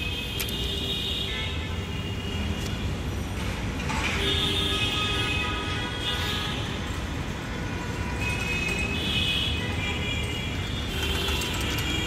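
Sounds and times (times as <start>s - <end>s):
ratcheting mechanical clicking: 10.9s - 12.0s.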